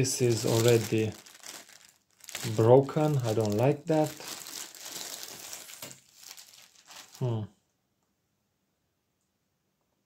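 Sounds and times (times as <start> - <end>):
plastic wrap crinkling: 0.0 - 7.4.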